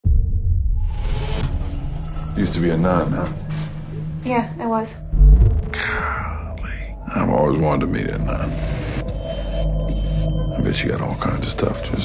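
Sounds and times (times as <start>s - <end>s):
deep cinematic rumble: 0.0s - 12.0s.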